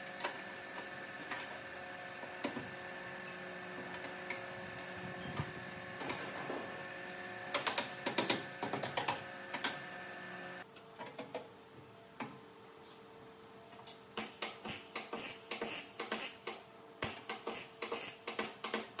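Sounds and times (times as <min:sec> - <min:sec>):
steady machine hum: 0:00.0 - 0:10.6.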